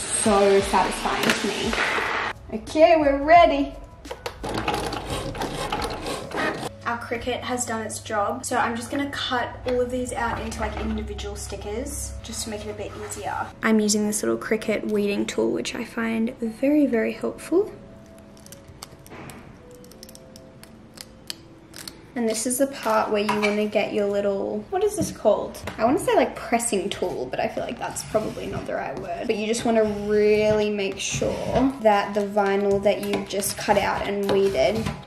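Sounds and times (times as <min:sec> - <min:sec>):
soft background music: 0:00.0 - 0:35.0
cutting machine whirring: 0:04.5 - 0:06.7.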